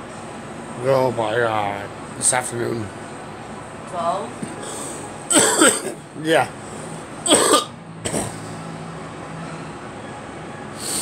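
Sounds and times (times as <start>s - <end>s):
woman coughing: 5.3s - 6.0s, 7.3s - 8.4s.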